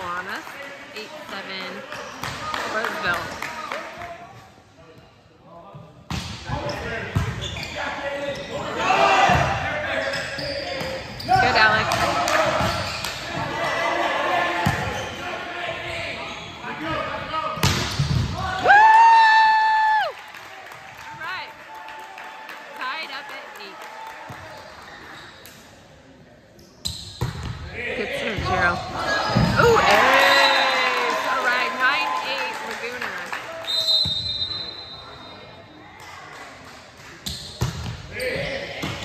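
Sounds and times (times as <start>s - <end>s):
sneakers squeaking on hardwood: 6.7s - 8.6s, 10.0s - 11.8s, 12.5s - 13.2s.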